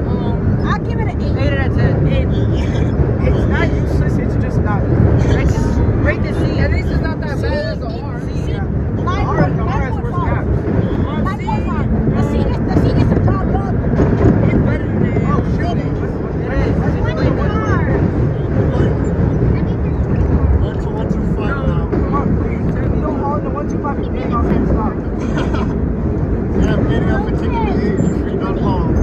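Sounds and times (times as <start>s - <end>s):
subway car rumbling in tunnel: 0.0s - 29.0s
voices chattering and calling: 0.0s - 29.0s.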